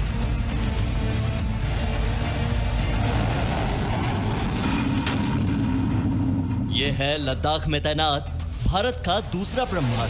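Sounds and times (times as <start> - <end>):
rocket motor roaring: 2.6 - 6.7.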